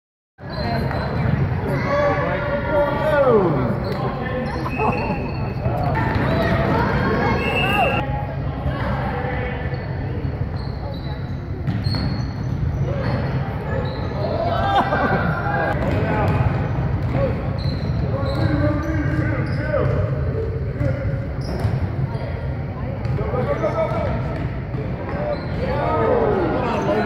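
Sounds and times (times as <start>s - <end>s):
voices calling out: 1.7s - 8.0s.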